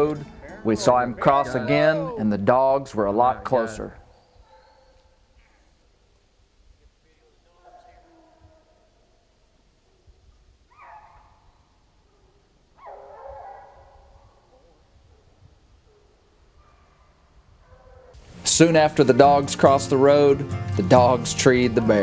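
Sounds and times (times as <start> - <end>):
hounds baying: 0.0 - 2.2, 3.0 - 5.6, 10.7 - 18.2.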